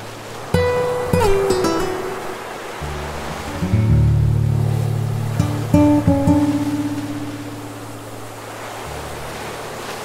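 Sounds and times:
ocean waves breaking: 0.0 - 10.0
acoustic guitar music: 0.5 - 9.3.

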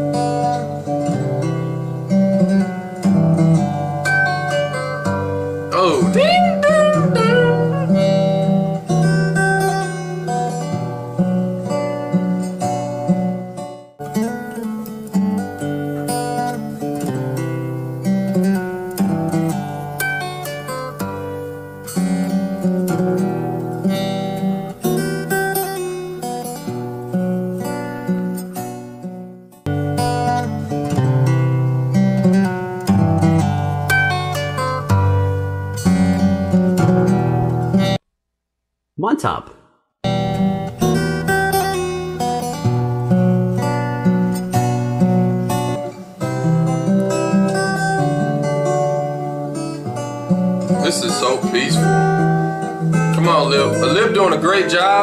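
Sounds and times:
fingerstyle acoustic guitar: 0.0 - 38.0, 40.0 - 55.0.

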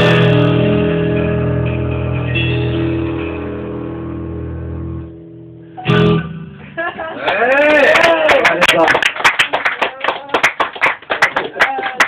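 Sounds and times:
small audience clapping: 7.0 - 12.0.

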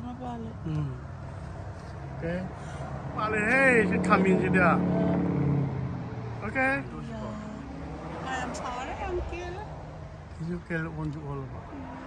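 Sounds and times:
vehicle engine hum: 0.0 - 12.0
woman talking: 8.2 - 9.7.

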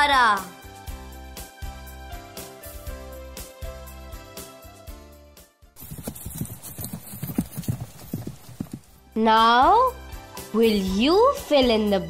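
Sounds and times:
background music: 0.0 - 12.0
cartoon hollow clip-clop knocks: 5.8 - 9.0.

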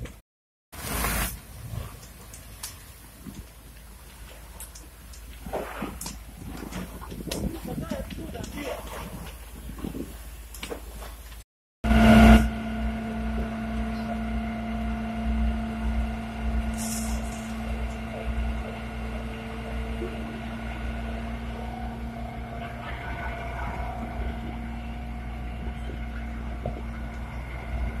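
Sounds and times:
fire truck engine running: 11.9 - 28.0.

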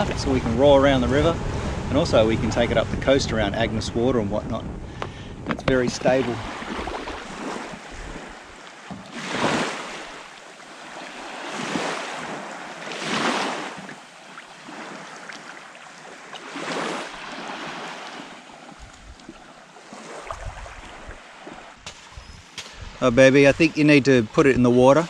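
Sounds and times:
wind on microphone: 0.0 - 8.6, 18.7 - 19.4, 20.2 - 25.0
small waves washing onto beach: 0.0 - 25.0.

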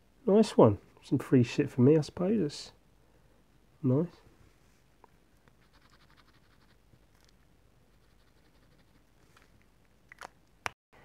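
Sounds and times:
marker scratching on card: 5.6 - 6.8.

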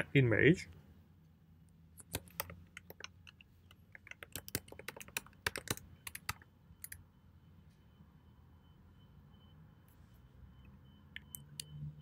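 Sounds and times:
computer keyboard typing: 2.0 - 7.0.

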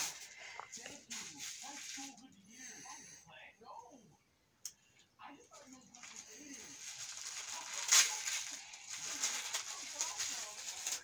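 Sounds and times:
gift wrapping rustling and crackling: 0.0 - 2.3, 5.5 - 11.0.

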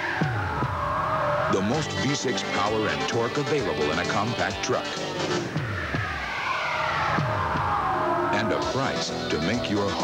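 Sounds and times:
commercial music: 0.0 - 10.0.

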